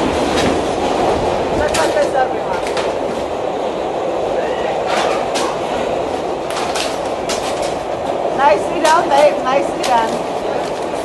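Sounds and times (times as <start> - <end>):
subway train rumble: 0.0 - 11.0
wheels clacking on track: 0.0 - 11.0.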